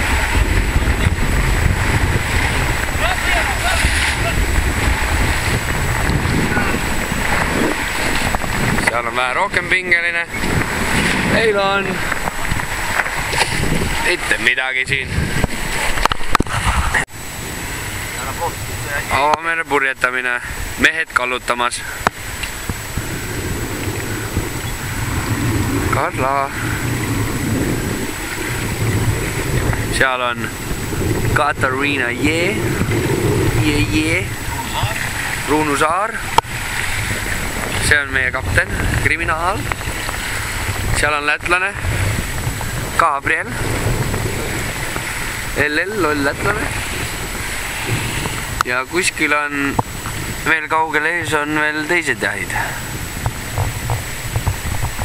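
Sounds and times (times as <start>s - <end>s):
water rushing along hull: 0.0s - 55.0s
wind buffeting microphone: 0.0s - 55.0s.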